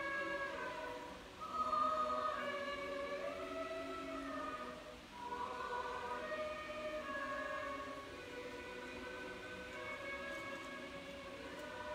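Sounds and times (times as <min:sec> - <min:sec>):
church choir chanting: 0:00.0 - 0:11.9.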